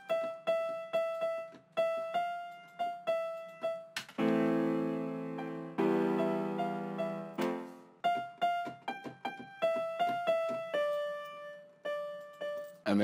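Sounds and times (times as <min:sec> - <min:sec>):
software piano melody: 0:00.0 - 0:13.0
held chord: 0:04.2 - 0:08.4.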